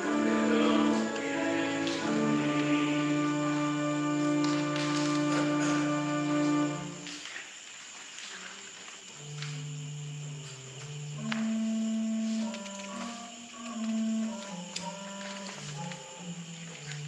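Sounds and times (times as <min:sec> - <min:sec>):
organ playing slow chords: 0:00.0 - 0:07.2, 0:09.1 - 0:17.0.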